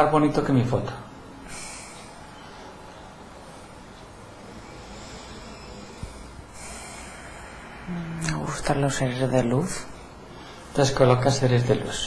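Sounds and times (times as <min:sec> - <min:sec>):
soft breath out: 0:01.4 - 0:08.2.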